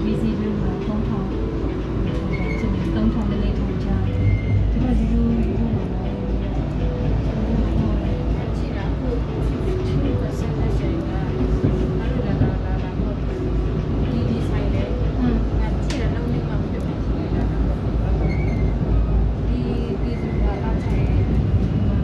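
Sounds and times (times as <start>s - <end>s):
indistinct voices talking: 0.0s - 22.0s
train rumble inside carriage: 0.0s - 22.0s.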